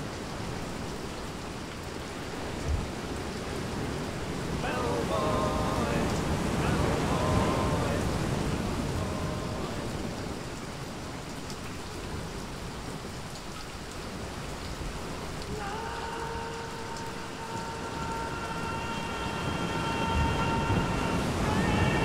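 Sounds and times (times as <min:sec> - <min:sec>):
rain and sea surf: 0:00.0 - 0:22.0
held musical note: 0:04.6 - 0:10.1, 0:15.5 - 0:22.0.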